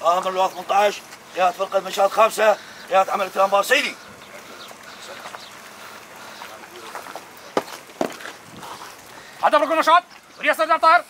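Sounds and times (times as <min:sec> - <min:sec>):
distant men's voices: 0:00.0 - 0:11.0.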